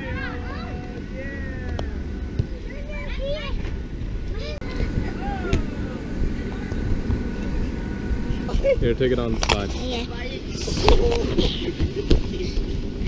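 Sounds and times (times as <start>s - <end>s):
electric air blower rumbling: 0.0s - 13.0s.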